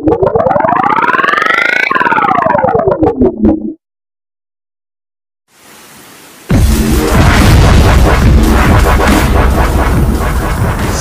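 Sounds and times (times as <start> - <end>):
distorted pulsing logo sound: 6.5 - 11.0.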